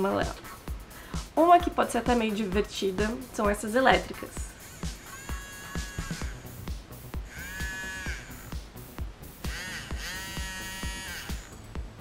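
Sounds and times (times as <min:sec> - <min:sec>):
music with steady beat: 0:00.0 - 0:12.0
electric eraser motor buzzing: 0:04.4 - 0:11.7.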